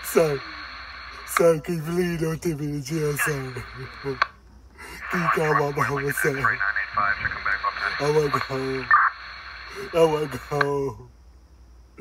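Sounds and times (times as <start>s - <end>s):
man talking: 0.0s - 0.5s, 1.2s - 4.2s, 4.8s - 8.9s, 9.7s - 11.1s.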